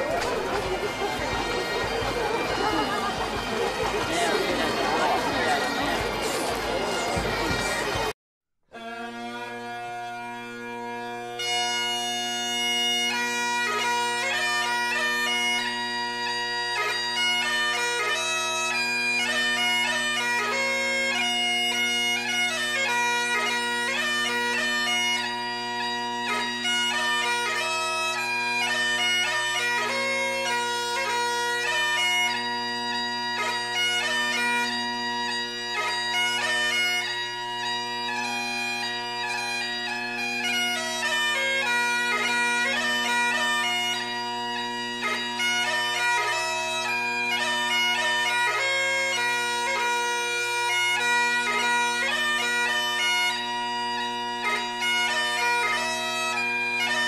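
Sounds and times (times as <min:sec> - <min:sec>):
bagpipe chanters playing a tune: 0:00.0 - 0:08.1, 0:08.7 - 0:57.0
bagpipe drones: 0:00.0 - 0:08.1, 0:08.7 - 0:57.0.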